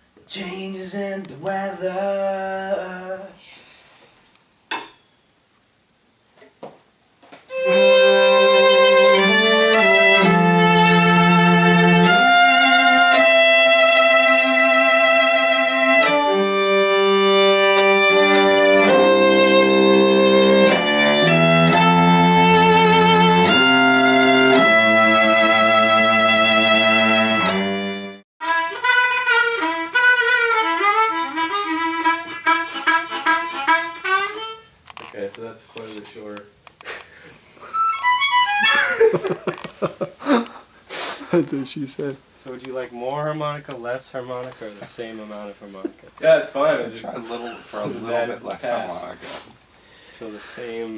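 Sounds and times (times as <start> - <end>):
cello and violin bowed chords: 7.5 - 34.2
harmonica trilling: 7.5 - 34.8, 37.2 - 39.1.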